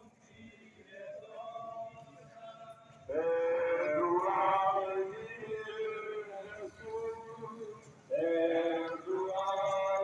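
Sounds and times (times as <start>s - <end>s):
person singing a hymn: 0.3s - 10.0s.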